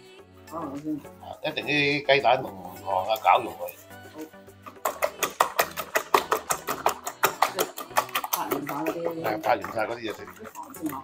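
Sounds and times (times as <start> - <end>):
whisk clicking in metal bowl: 4.6 - 11.0.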